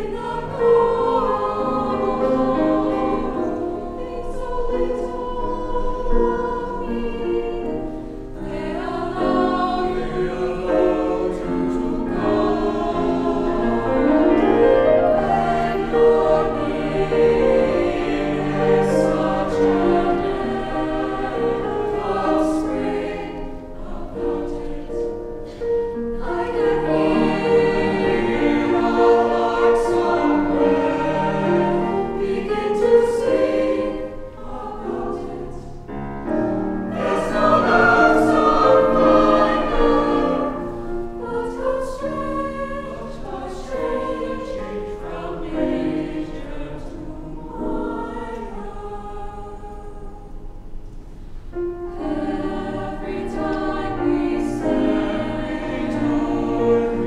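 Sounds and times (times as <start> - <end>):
mixed choir singing: 0.0 - 50.8, 51.6 - 57.0.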